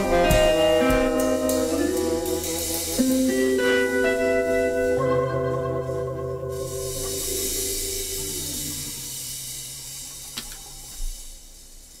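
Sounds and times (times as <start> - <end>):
held keyboard and guitar notes: 0.0 - 10.0
steady hiss: 0.0 - 12.0.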